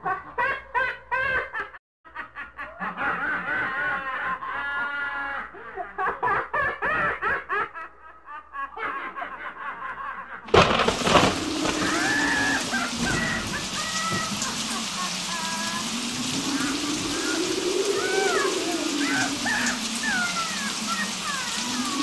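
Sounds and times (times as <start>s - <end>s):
loud hiss-like rush of noise: 10.6s - 22.0s.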